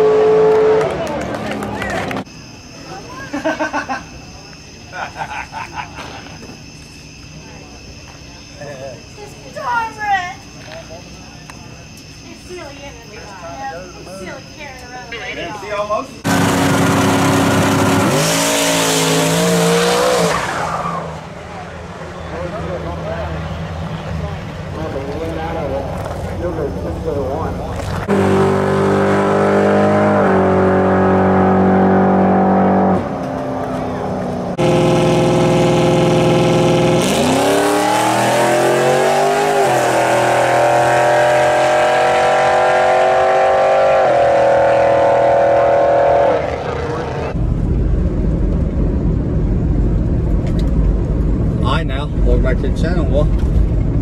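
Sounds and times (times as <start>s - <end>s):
drag car engine at full throttle: 16.2s - 54.0s.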